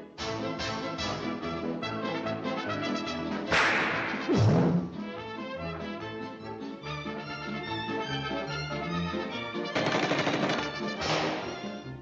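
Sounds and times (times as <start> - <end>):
cartoon orchestral music: 0.0 - 12.0
rapid rattling sound effect: 9.8 - 10.8.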